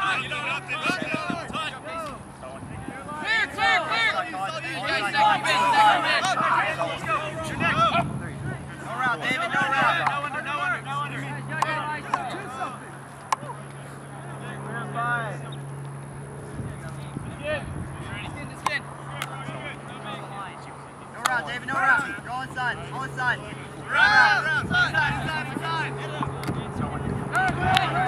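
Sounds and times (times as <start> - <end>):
people calling and shouting: 0.0 - 28.0
steady low hum: 0.0 - 28.0.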